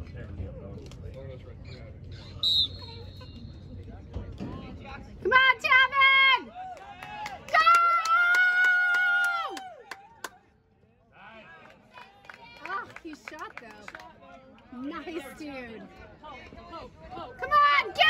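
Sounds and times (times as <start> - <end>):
referee's whistle blast: 2.4 - 3.6.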